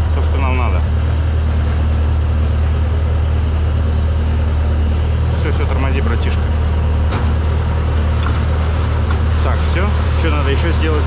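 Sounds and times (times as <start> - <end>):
loader engine idling: 0.0 - 11.0.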